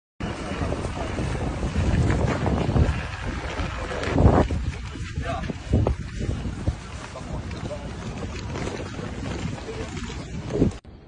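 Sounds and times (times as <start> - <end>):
wind buffeting microphone: 0.2 - 11.0.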